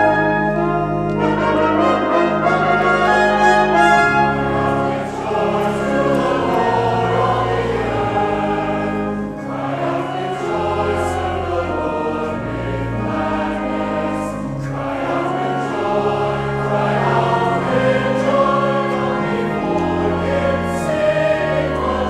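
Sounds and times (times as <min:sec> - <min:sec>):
instrumental accompaniment: 0:00.0 - 0:22.0
mixed choir singing: 0:00.0 - 0:22.0.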